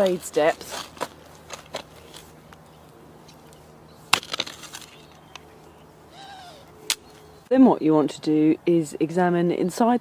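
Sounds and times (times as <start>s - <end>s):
spade crunching into stony soil: 0.0s - 2.4s, 4.1s - 5.2s.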